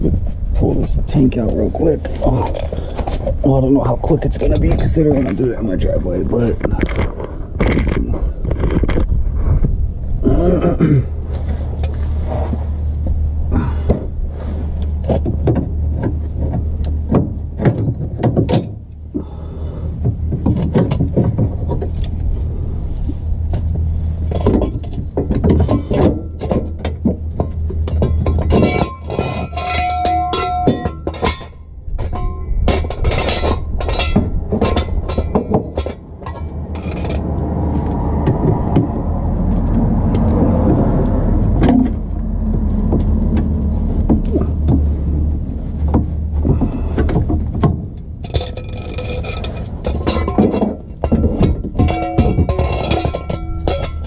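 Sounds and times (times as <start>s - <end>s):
hand tools and metal parts clattering: 0.0s - 9.1s, 10.4s - 54.0s
steady low hum: 0.0s - 54.0s.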